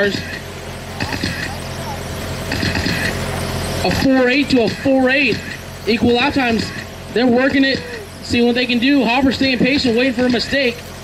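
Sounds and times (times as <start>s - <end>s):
low steady hum: 0.0s - 11.0s
rc car motors whining: 0.0s - 11.0s.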